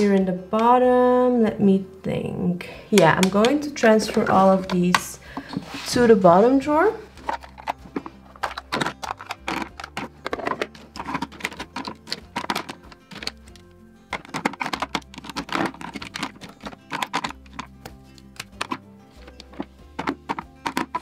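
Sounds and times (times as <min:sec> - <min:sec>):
background music: 0:00.0 - 0:21.0
plastic tubes clicking and clattering: 0:07.2 - 0:21.0.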